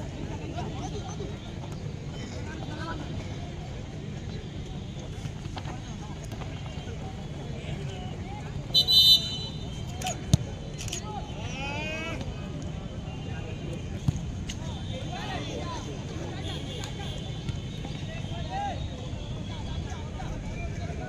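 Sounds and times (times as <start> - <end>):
referee whistle blast: 8.8 - 9.6.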